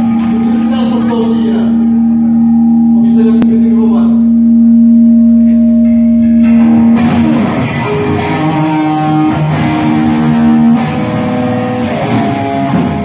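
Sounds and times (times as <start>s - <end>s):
amplified electric guitar: 0.0s - 13.0s.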